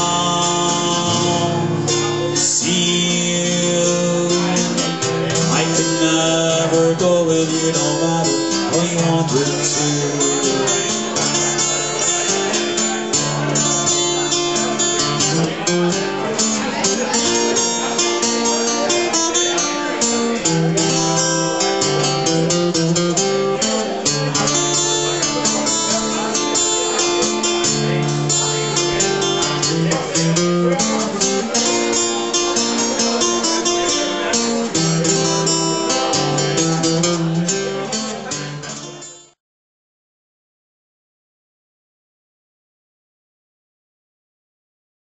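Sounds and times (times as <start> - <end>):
acoustic guitar strumming chords: 0.0 - 39.4.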